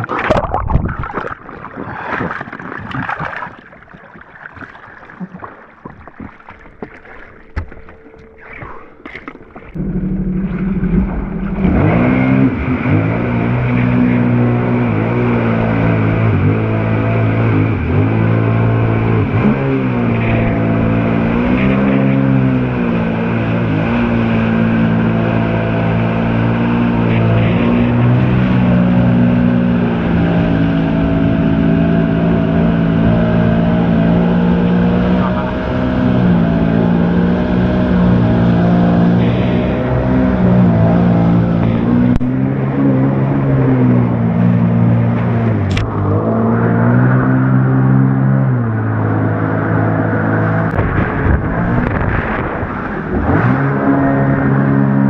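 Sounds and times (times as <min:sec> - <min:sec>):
rushing water and spray: 0:00.0 - 0:15.1
jet ski engine revving: 0:06.6 - 0:55.0.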